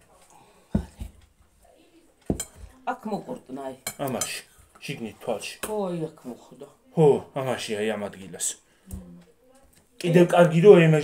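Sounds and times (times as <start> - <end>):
tableware clinking: 2.3 - 2.7.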